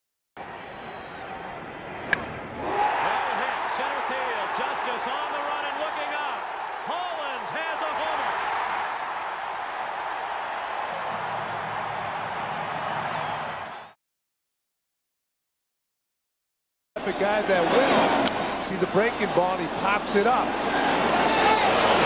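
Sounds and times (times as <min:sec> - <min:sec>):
crowd cheering and shouting: 0:00.4 - 0:14.0, 0:17.0 - 0:22.0
bat cracking on ball: 0:02.1 - 0:02.4.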